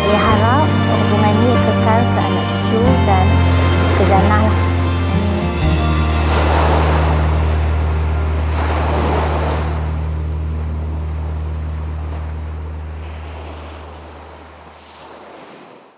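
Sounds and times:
held low note: 0.0s - 14.5s
sea waves washing onto shore: 0.0s - 15.9s.

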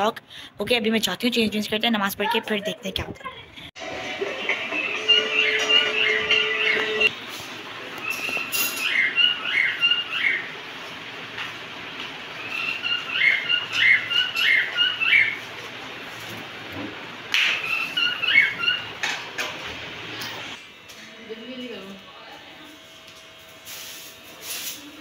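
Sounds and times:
pet birds chirping: 8.0s - 10.6s, 12.4s - 15.4s, 17.5s - 19.0s.

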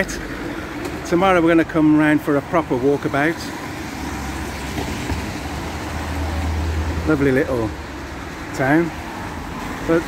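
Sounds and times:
engine rumble: 0.0s - 10.0s
tyre noise on wet road: 0.0s - 10.0s.

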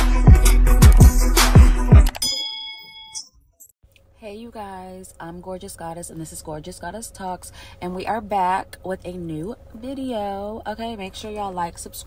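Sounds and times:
bell-like ding: 2.2s - 3.4s.

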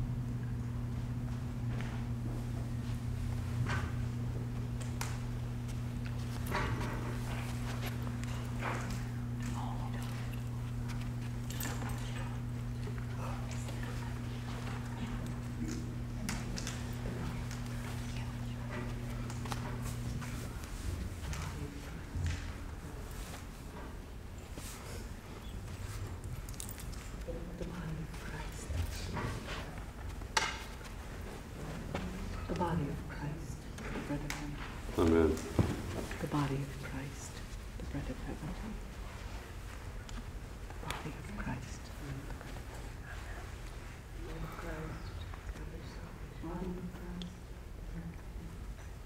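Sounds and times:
low electrical hum: 0.0s - 49.0s
movement in a small room: 0.0s - 49.0s
soft footsteps: 0.3s - 47.0s.

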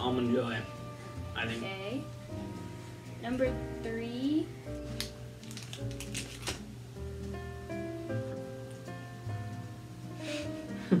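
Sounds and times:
background music with held notes: 0.0s - 11.0s
plastic wrapper crinkling: 4.9s - 6.7s.

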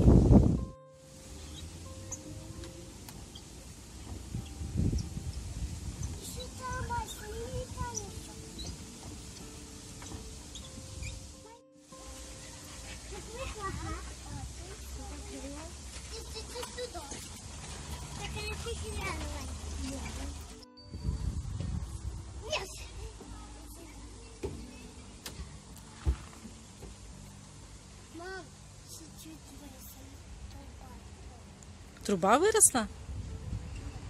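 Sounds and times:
wind rumbling on microphone: 0.0s - 0.8s, 3.4s - 9.4s, 19.6s - 22.4s, 32.9s - 34.0s.

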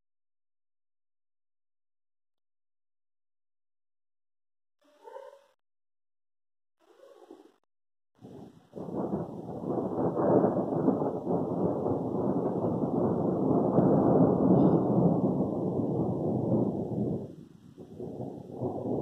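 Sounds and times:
thunder rumbling: 8.2s - 19.0s.

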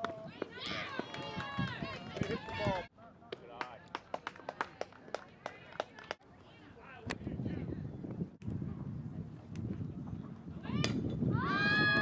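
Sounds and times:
bat striking softball: 10.7s - 11.2s.

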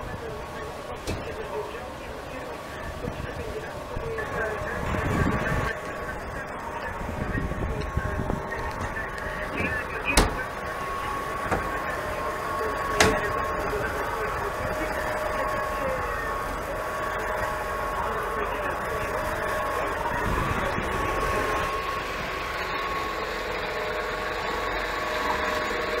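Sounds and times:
churned water rushing: 0.0s - 26.0s
electric outboard motors whining: 0.0s - 26.0s.

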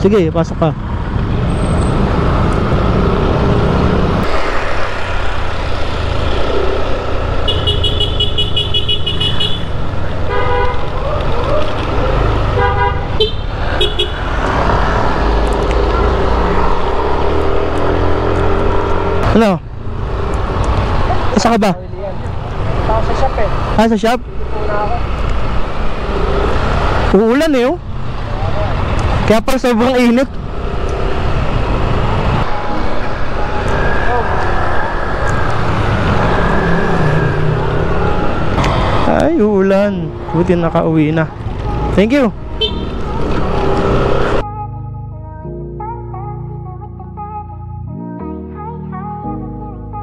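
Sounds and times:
scooter engine and road rumble: 0.0s - 44.7s
vehicle horn beeping: 7.4s - 9.7s, 10.3s - 10.9s, 12.6s - 14.2s, 42.6s - 43.0s.

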